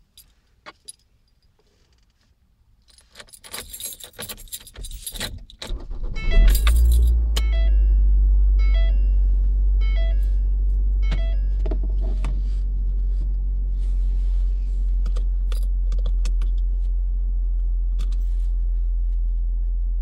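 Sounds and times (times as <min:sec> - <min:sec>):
keys jangling: 0:02.8 - 0:07.2
car engine starting and idling: 0:05.6 - 0:20.0
short electronic chime: 0:06.0 - 0:11.6.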